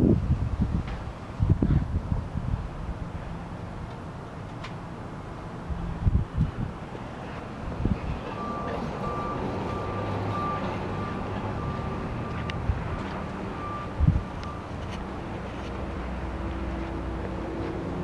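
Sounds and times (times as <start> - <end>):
steady low rumble: 0.0 - 18.0
car warning chime beeping: 8.3 - 14.8.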